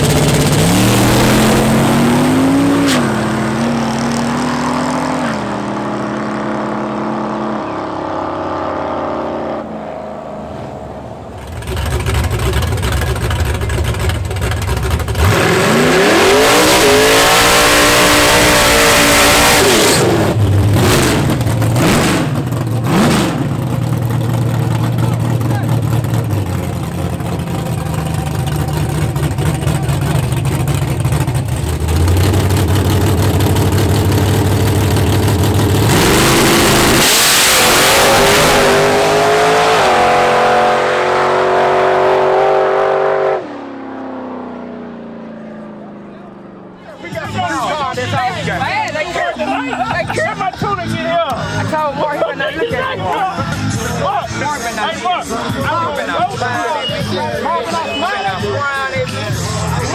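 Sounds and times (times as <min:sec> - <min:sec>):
drag car engine revving: 0:00.0 - 0:51.9.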